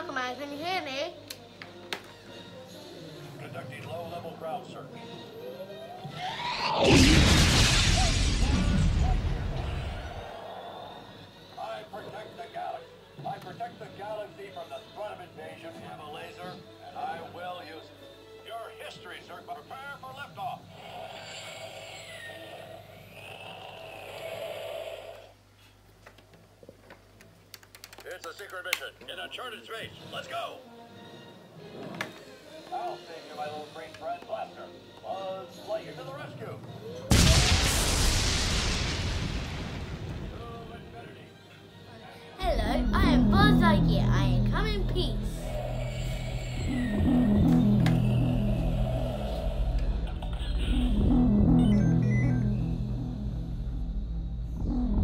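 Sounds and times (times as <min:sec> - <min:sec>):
background music low melodic phrase: 0:40.6 - 0:55.0.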